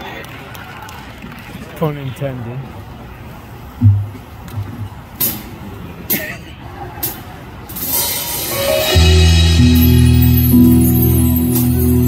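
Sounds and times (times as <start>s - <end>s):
keyboard and bass chords: 3.8s - 4.8s, 8.5s - 12.0s
low thumps from stage: 3.8s - 5.0s
cymbal swell: 7.8s - 12.0s.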